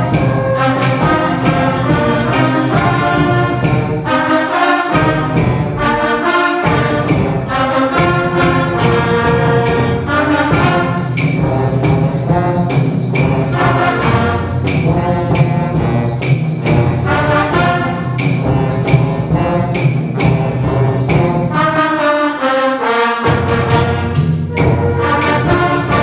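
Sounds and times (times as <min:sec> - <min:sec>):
brass and woodwind chords: 0:00.0 - 0:16.1, 0:17.1 - 0:26.0
percussion strikes keeping beat: 0:00.0 - 0:21.8, 0:23.2 - 0:26.0.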